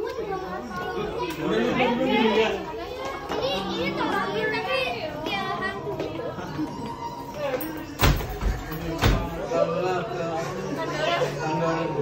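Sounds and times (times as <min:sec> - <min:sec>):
people chattering: 0:00.0 - 0:12.0.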